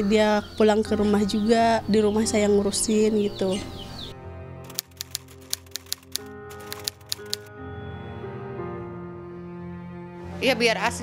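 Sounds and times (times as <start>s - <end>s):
background music: 0.0s - 11.0s
typewriter key clacks: 4.7s - 7.5s.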